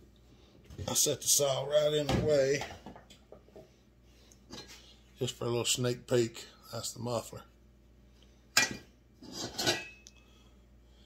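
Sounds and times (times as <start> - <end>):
metal parts clattering on workbench: 8.6 - 10.0.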